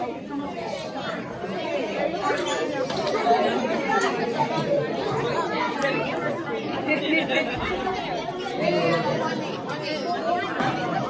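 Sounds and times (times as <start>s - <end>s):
overlapping chatter of children and adults: 0.0s - 11.0s.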